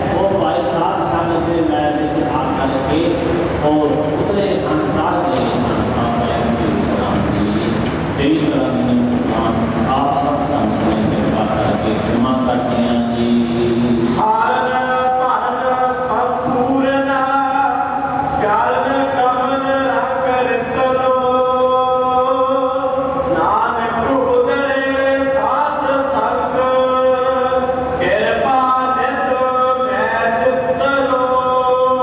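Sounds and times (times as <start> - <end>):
constant rushing noise: 0.0 - 21.1
man chanting a hymn: 0.0 - 32.0.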